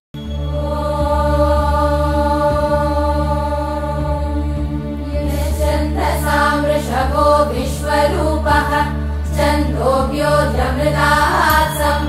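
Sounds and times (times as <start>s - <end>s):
sustained drone of held tones: 0.2s - 4.6s, 10.0s - 12.0s.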